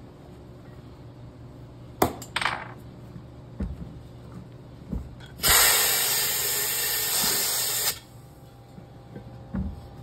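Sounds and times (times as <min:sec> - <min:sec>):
air hose hissing: 0:05.4 - 0:08.1.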